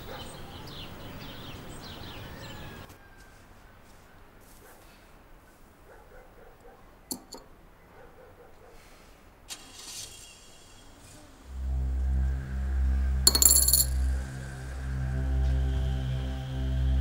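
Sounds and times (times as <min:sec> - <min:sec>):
metal dish clinking: 0:07.1 - 0:07.4
dramatic music low drone: 0:11.4 - 0:17.0.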